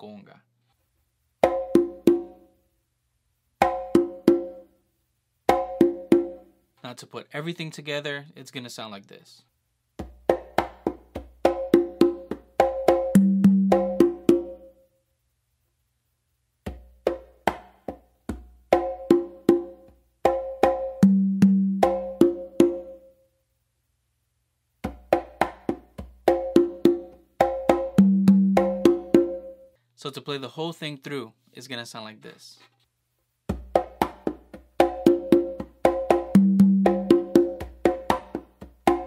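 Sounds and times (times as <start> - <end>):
congas played by hand: 1.4 - 2.5, 3.6 - 4.7, 5.5 - 6.5, 10.0 - 14.8, 16.6 - 23.1, 24.8 - 29.7, 33.5 - 39.0.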